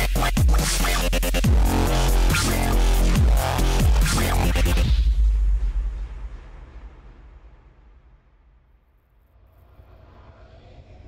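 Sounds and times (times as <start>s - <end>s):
low rumble: 1.5s - 11.0s.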